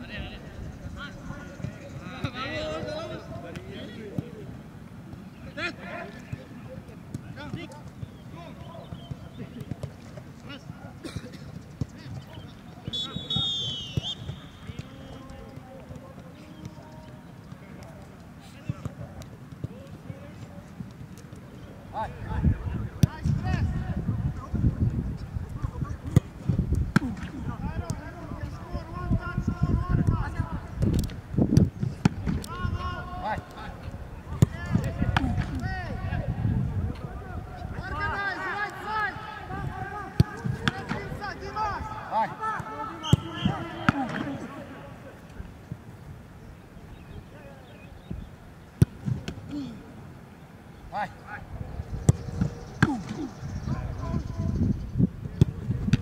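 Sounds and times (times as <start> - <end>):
football being kicked: 34.3 - 35.6, 52.0 - 53.3, 55.3 - 56.0
indistinct players' voices: 48.8 - 54.4.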